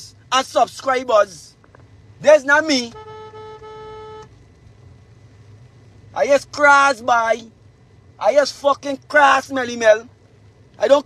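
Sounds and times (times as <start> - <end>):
car cabin rumble: 1.6 - 11.0
held high tone: 2.4 - 4.3.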